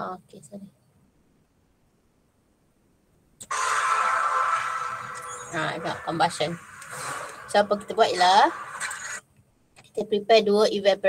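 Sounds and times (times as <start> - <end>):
loud whoosh: 3.4 - 9.2
steady ringing tone: 3.4 - 9.2.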